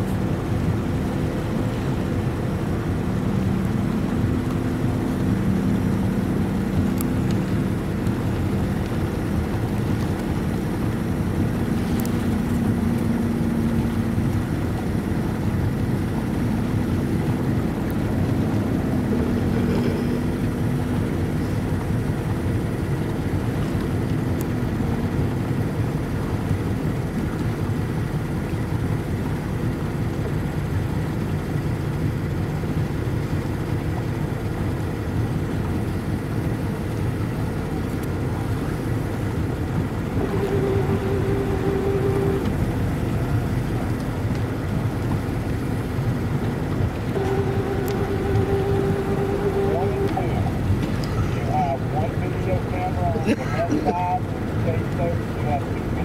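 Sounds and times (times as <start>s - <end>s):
higher hum: 0.0s - 56.0s
motorboat engine running: 0.0s - 56.0s
water noise: 0.0s - 56.0s.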